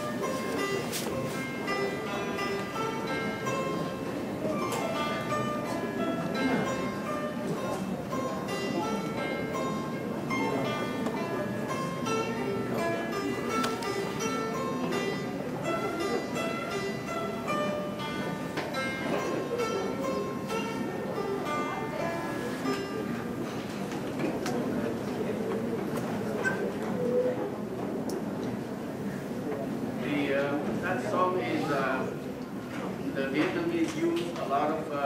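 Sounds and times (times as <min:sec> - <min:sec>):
plucked zither melody: 0:00.0 - 0:26.7.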